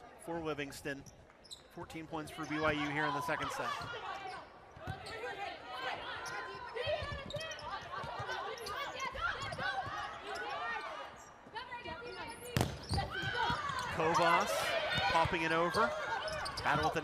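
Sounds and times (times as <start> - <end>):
crowd voices: 2.2 - 17.0
players calling: 12.1 - 17.0.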